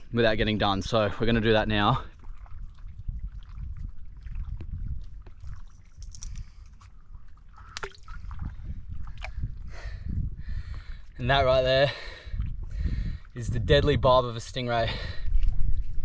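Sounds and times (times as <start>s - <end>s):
shallow water sloshing and dripping: 0.0s - 16.0s.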